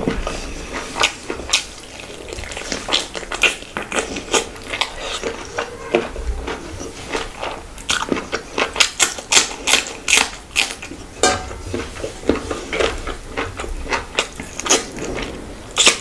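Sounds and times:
chewing and lip-smacking: 0.1s - 16.0s.

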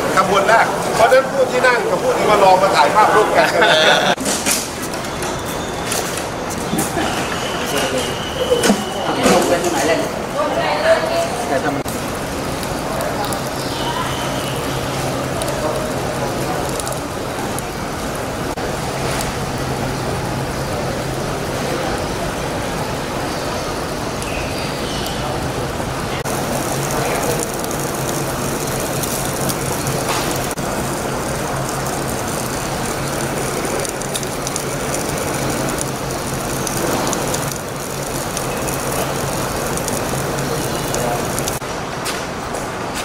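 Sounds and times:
indistinct voices: 0.0s - 4.2s, 4.9s - 41.7s.

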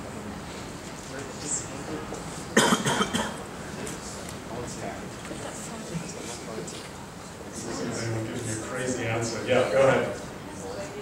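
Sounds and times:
person coughing: 2.6s - 3.4s.

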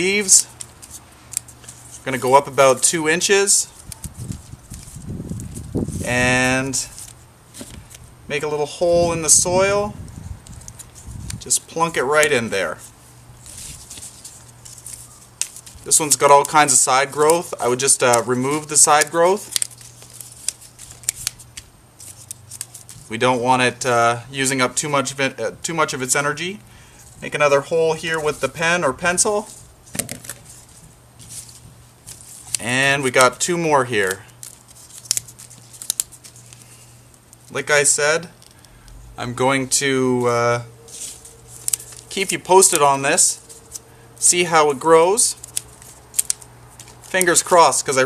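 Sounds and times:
plant cuttings rustling: 0.0s - 23.4s, 40.2s - 48.0s.

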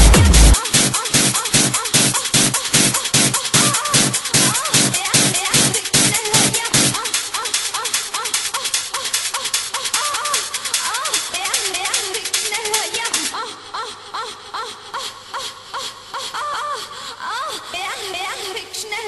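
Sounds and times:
dance beat: 0.0s - 13.4s.

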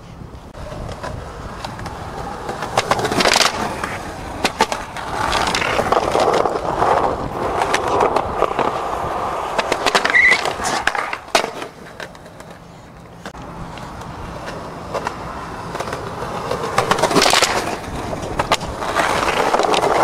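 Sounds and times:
skateboard wheels rolling: 0.0s - 20.0s
skateboard clacks on concrete: 0.6s - 20.0s.

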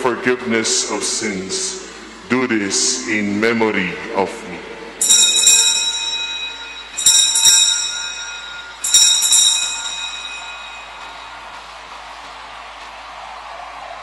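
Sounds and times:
altar bells ringing: 5.0s - 12.0s.

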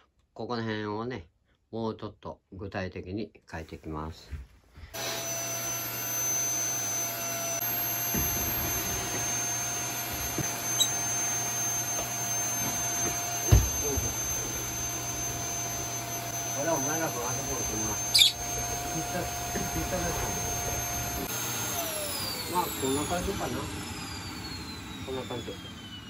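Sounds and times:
vacuum cleaner whining hum: 3.9s - 26.0s
vacuum hose knocks: 8.0s - 9.4s, 11.9s - 14.8s.

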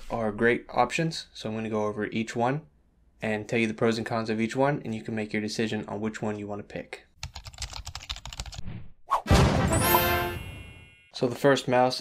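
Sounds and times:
rapid keyboard typing: 7.2s - 8.6s.

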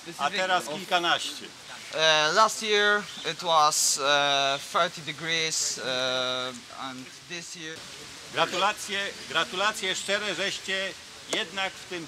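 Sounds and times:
man speaking: 0.0s - 12.0s
steady background hiss: 0.0s - 12.0s.

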